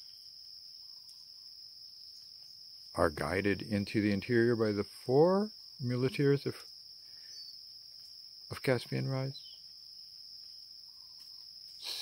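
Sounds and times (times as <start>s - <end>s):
insects chorus drone: 0.0s - 12.0s.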